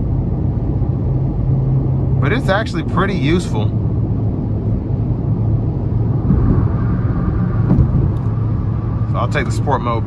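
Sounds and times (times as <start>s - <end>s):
car engine drone in cabin: 0.0s - 10.0s
tyre and road noise: 0.0s - 10.0s.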